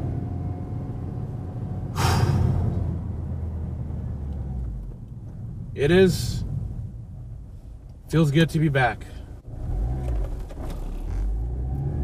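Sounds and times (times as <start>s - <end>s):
car engine and road drone: 0.0s - 12.0s.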